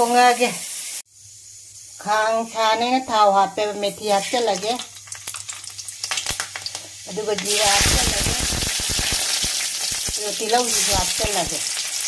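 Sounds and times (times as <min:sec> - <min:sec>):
hot oil sizzling in a wok: 0:00.0 - 0:12.0.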